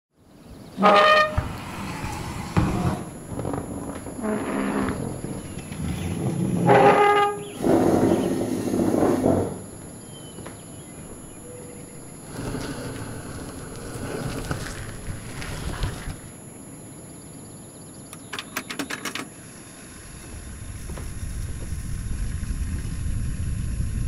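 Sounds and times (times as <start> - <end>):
low ambience: 0.2 - 18.3
rumbling clattering noise: 0.8 - 16.2, 19.9 - 24.0.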